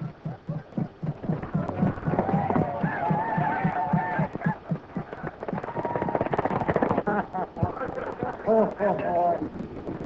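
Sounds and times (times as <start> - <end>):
voices shouting: 1.5 - 6.3
rapid clatter of sharp cracks: 1.7 - 10.0.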